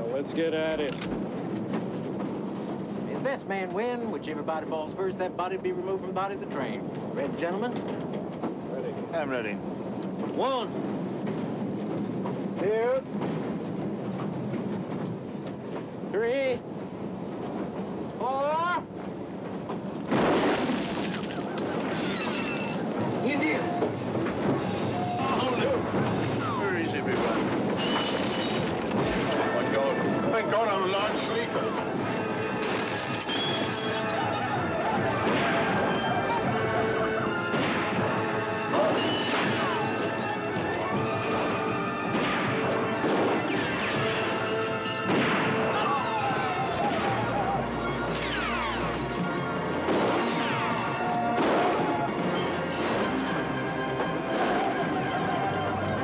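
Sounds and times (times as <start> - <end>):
crashes and smashes: 20.0 - 47.5, 49.8 - 56.0
dramatic music: 22.6 - 56.0
people shouting and yelling: 22.8 - 27.8, 33.4 - 42.0, 44.8 - 49.6, 50.2 - 56.0.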